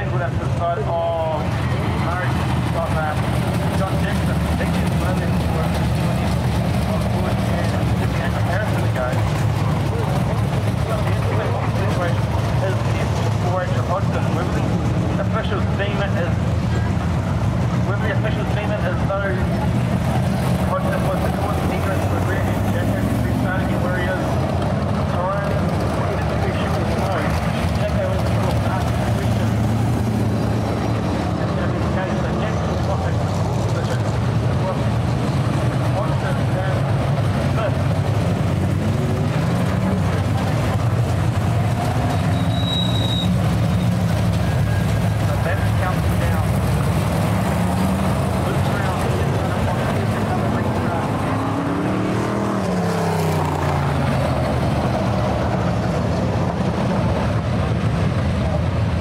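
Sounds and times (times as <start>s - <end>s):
race car engines droning: 0.0s - 59.0s.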